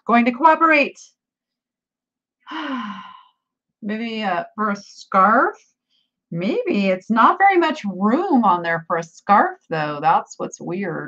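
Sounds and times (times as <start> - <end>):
woman sighing: 2.5 - 3.3.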